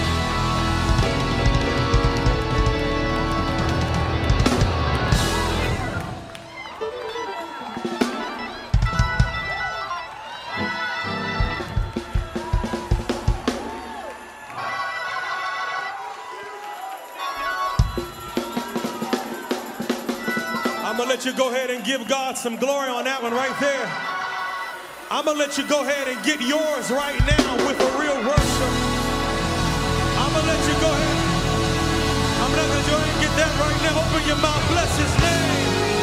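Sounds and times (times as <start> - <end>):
gospel band playing: 0.0 - 36.0
drum hits: 11.4 - 13.8.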